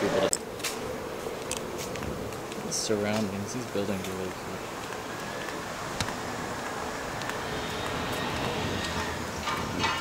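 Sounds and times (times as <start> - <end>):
city street background noise: 0.0 - 10.0.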